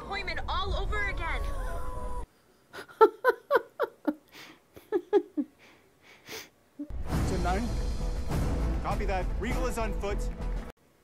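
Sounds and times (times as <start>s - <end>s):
quiet breathing: 4.3s - 4.8s, 5.5s - 6.6s
film soundtrack music: 6.9s - 10.7s.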